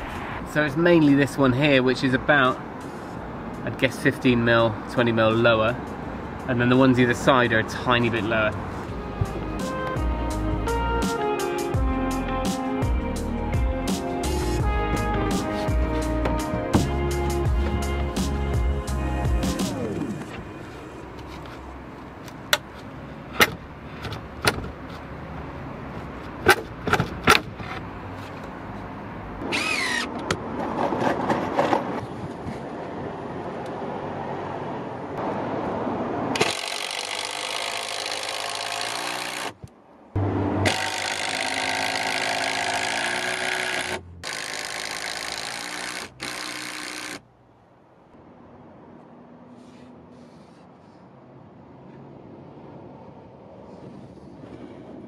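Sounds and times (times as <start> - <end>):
impact driver driving screws: 29.5 - 30.1, 36.4 - 39.6, 40.6 - 47.2.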